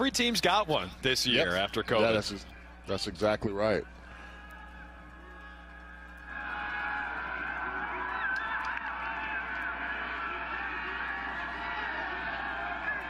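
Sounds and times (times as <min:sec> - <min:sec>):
stadium crowd cheering: 0:01.4 - 0:13.0.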